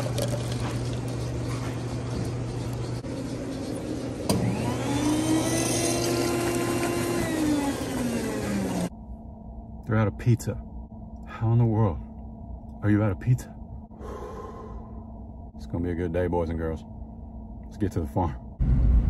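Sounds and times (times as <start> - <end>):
coffee pouring into cup: 0.0 - 2.4
machine hum: 0.0 - 19.0
machine whine: 0.1 - 9.9.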